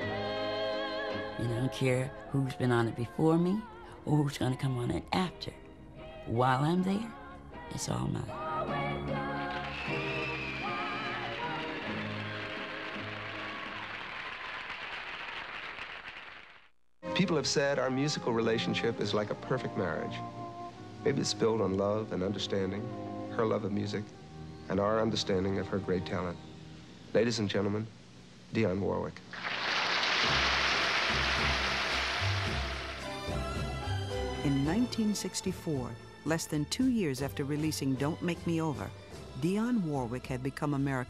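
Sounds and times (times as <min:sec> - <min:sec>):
audience applause: 0:09.5 - 0:16.7, 0:29.3 - 0:34.1
bass notes: 0:30.3 - 0:34.8.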